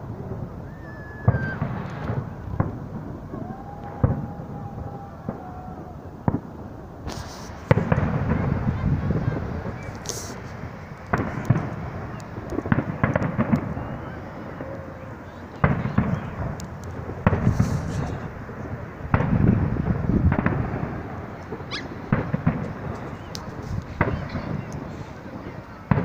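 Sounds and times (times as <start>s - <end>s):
low rolling rumble: 0.0s - 26.0s
firework shells bursting: 0.6s - 4.4s, 6.2s - 26.0s.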